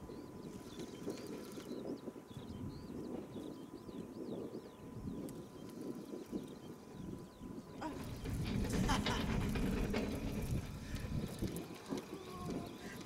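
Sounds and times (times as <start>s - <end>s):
wind: 0.0s - 13.0s.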